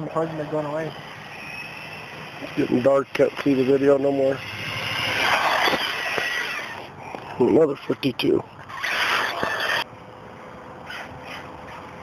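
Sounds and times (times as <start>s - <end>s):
toy car passing at speed: 0.0s - 7.0s, 8.6s - 9.9s, 10.8s - 12.0s
high motor whine: 0.0s - 12.0s.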